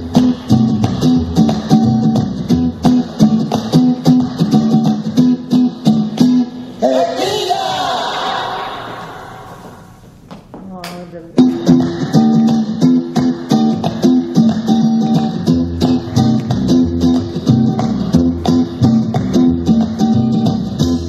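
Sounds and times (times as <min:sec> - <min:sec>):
plucked guitar: 0:00.0 - 0:06.5, 0:11.4 - 0:21.0
mambo dance music: 0:00.0 - 0:09.8, 0:11.2 - 0:21.0.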